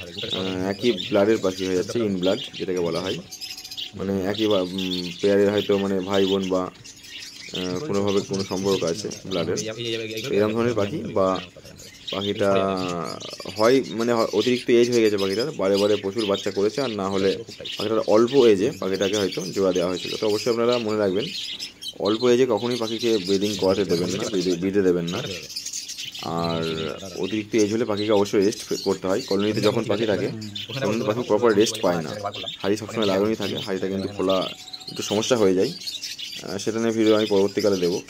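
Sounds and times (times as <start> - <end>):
man talking: 0.0 - 3.4, 4.0 - 6.8, 7.5 - 21.4, 22.0 - 25.5, 26.2 - 35.8, 36.4 - 38.0
budgerigars chirping: 0.0 - 38.0.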